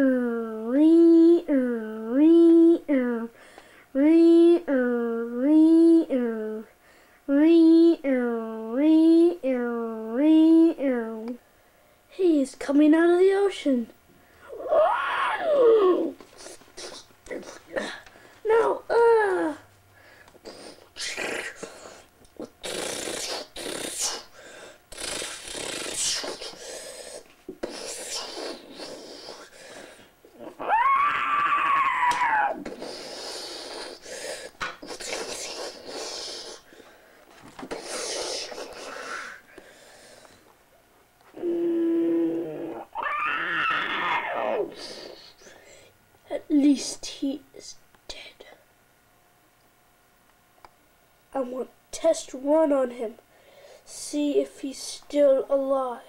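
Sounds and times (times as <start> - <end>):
child making monster sounds: 0.0 - 3.4, 4.0 - 6.7, 7.3 - 11.4, 14.5 - 19.7, 20.4 - 24.3, 24.9 - 26.6, 27.6 - 29.5, 30.4 - 34.1, 34.8 - 36.6, 37.7 - 39.4, 41.3 - 45.5
hissing rushing mouth noise: 20.4 - 24.3, 24.9 - 29.6, 32.7 - 36.7, 37.7 - 39.4.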